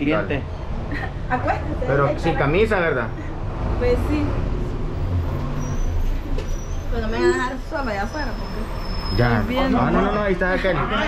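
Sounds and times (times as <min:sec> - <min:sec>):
large vehicle engine rumble: 0:00.0 - 0:11.0.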